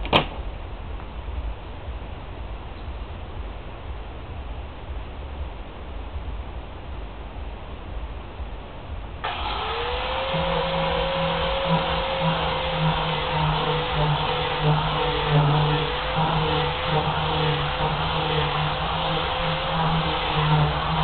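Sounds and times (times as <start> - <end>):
electric grinder motor whining: 9.2 - 21.0.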